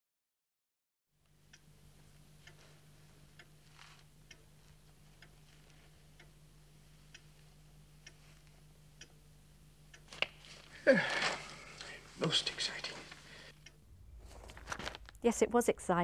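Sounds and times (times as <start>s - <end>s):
steady low hum: 1.2s - 16.0s
clock ticking: 1.3s - 10.6s, 11.7s - 13.9s
soft rustle: 2.4s - 6.2s, 6.9s - 8.7s, 10.1s - 13.3s, 14.1s - 15.2s.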